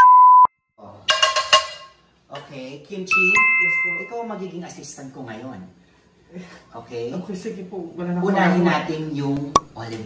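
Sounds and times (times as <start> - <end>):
electronic beep tone: 3.1 - 4.2
ringing chime effect: 3.1 - 4.3.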